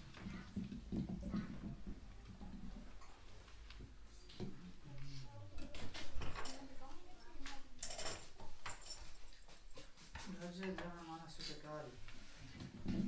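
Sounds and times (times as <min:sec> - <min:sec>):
quiet talking: 0:04.2 - 0:09.0.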